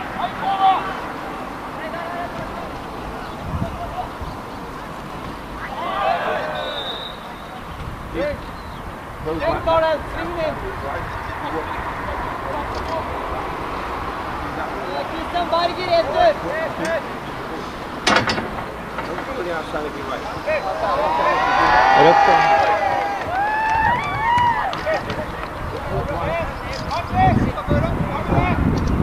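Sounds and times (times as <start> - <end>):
distant players shouting: 0.0 - 8.6, 18.6 - 28.4.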